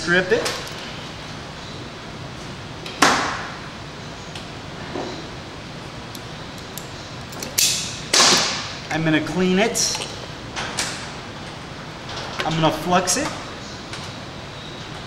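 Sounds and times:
wire stripper snapping: 6.2s - 8.8s.

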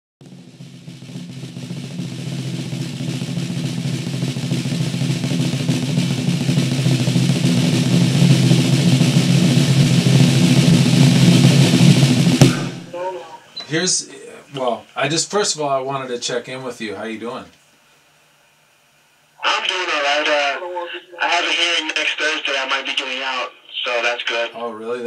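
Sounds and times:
drum roll: 0.2s - 14.0s.

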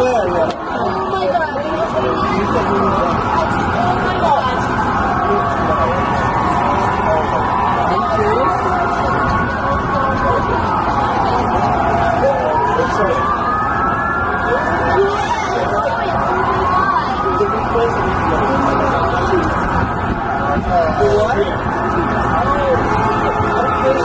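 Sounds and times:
city street noise: 0.0s - 24.0s
crowd babble: 0.0s - 24.0s
emergency sirens wailing: 0.0s - 24.0s.

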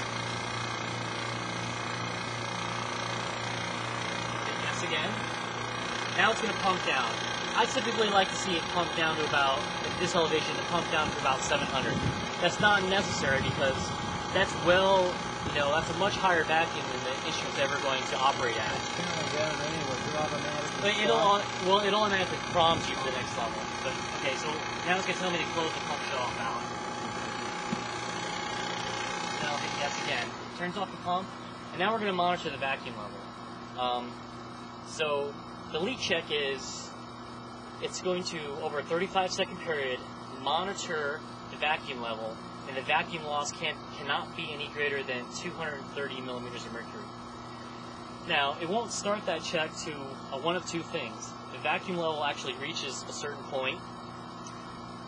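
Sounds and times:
vacuum pump humming: 0.0s - 55.0s.

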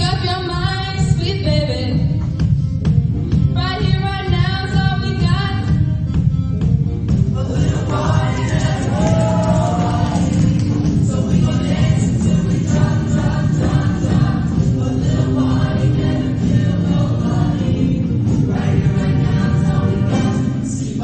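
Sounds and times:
choir singing with instruments: 7.2s - 21.0s.

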